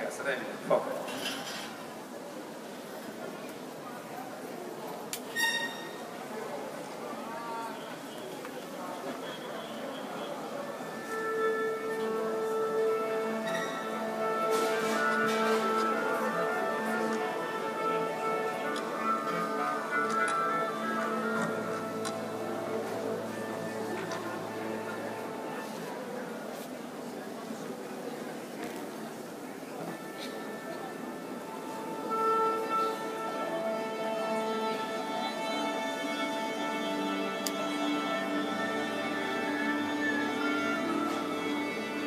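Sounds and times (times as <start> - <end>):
orchestra instruments holding notes: 10.3 - 26.5, 29.7 - 42.0.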